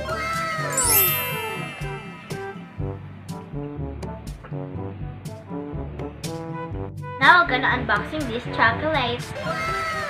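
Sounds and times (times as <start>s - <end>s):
tones sliding down in pitch: 0.7s - 2.8s
bright shimmering chime: 0.7s - 3.0s
brass background music: 2.4s - 9.4s.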